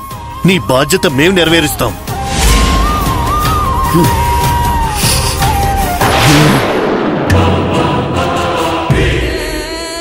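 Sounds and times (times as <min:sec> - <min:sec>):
choir-like voices: 0:07.0 - 0:10.0.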